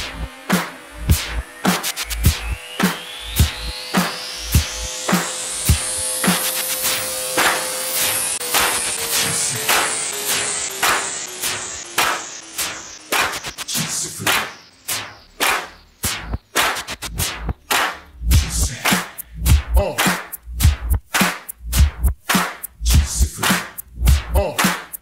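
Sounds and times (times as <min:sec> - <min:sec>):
tone stepping down in pitch: 0:00.0 - 0:13.1
rising noise sweep: 0:00.0 - 0:24.3
electronic music: 0:00.0 - 0:25.0.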